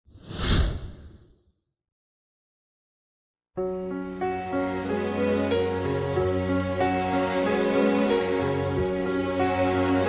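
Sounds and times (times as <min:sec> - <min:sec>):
whoosh sound effect: 0:00.1 - 0:01.4.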